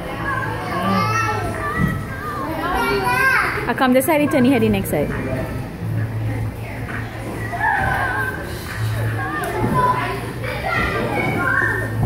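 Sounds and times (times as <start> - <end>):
children chattering and calling out: 0.0 - 4.8, 6.5 - 12.0.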